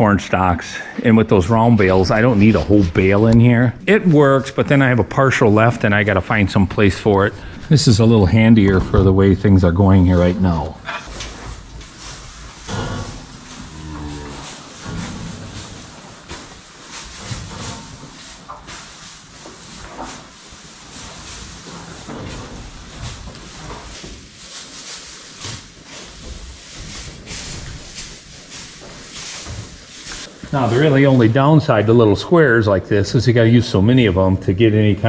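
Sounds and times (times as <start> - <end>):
straw rustling: 0.0 - 32.0
cows mooing: 12.7 - 15.8.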